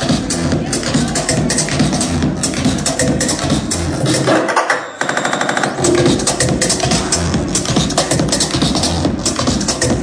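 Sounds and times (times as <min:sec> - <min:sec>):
minimal techno over club speakers: 0:00.0 - 0:04.3, 0:05.6 - 0:10.0.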